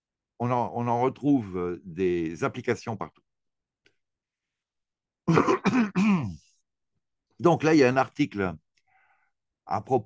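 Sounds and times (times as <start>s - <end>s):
man clearing his throat: 5.3s - 6.5s.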